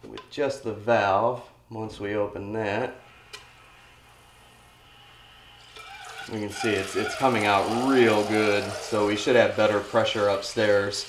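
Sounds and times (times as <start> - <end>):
water trickling into plastic pitcher: 5.6 - 10.9.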